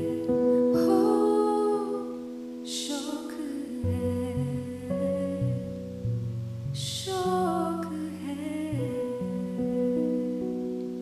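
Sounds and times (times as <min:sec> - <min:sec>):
woman singing wordless notes: 0:00.0 - 0:06.0, 0:06.8 - 0:11.0.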